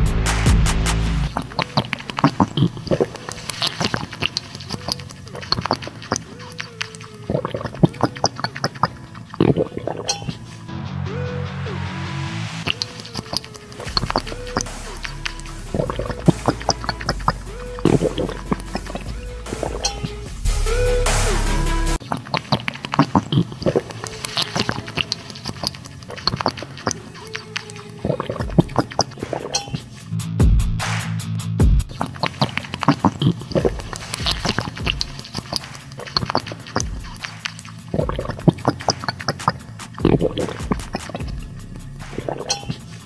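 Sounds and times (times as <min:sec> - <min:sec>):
background music: 0:00.0 - 0:22.1, 0:22.9 - 0:43.0
gulps and sips: 0:01.3 - 0:10.6, 0:12.7 - 0:20.4, 0:22.0 - 0:30.1, 0:31.9 - 0:43.0
sucking through a straw: 0:01.3 - 0:10.7, 0:12.6 - 0:20.3, 0:21.9 - 0:30.0, 0:31.9 - 0:43.0.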